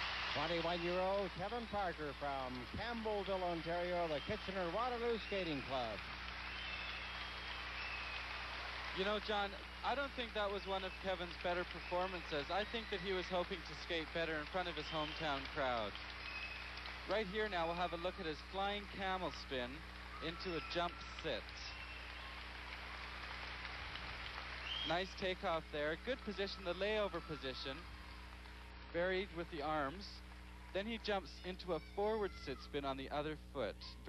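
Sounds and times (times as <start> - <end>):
crowd applauding: 0.0 - 32.6
ice arena ambience hiss: 0.0 - 34.0
man's voice: 0.4 - 6.0, 9.0 - 15.9, 24.9 - 27.8.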